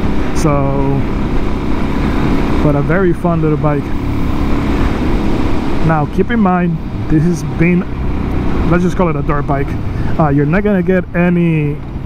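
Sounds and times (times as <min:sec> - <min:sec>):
motorcycle engine: 0:00.0 - 0:12.0.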